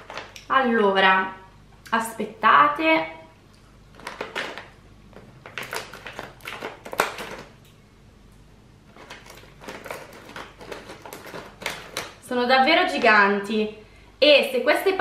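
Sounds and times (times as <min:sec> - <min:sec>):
plastic snack bag crinkling: 0:00.0 - 0:00.5, 0:03.9 - 0:07.6, 0:08.8 - 0:13.3.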